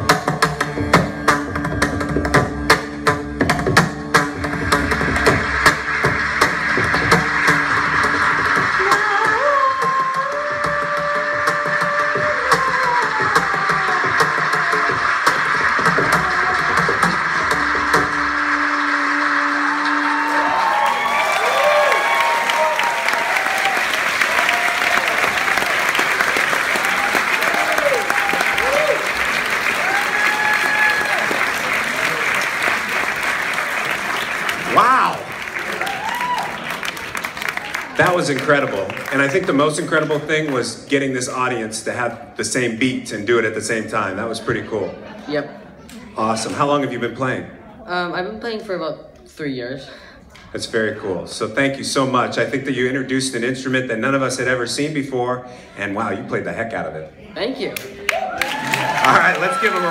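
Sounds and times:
audience applauding and cheering: 0:00.0 - 0:43.0, 0:57.7 - 0:59.9.

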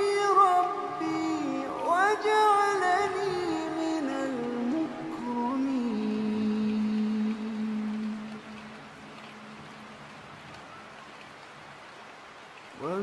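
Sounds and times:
man reciting in a chant: 0:00.0 - 0:08.6, 0:12.8 - 0:13.0
steady faint rain: 0:00.0 - 0:13.0.

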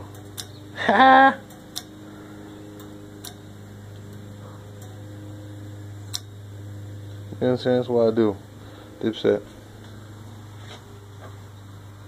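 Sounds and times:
steady low hum: 0:00.0 - 0:12.0
person laughing: 0:00.8 - 0:01.4.

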